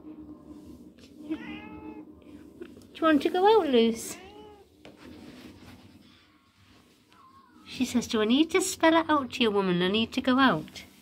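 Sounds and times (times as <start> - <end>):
cat meowing: 1.2 - 2.1, 4.0 - 4.8, 7.1 - 7.8.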